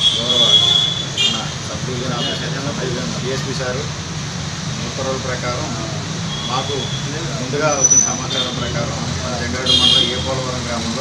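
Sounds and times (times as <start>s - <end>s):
man speaking: 0.0s - 4.0s, 4.8s - 11.0s
road traffic: 0.0s - 11.0s
vehicle horn: 9.7s - 10.3s.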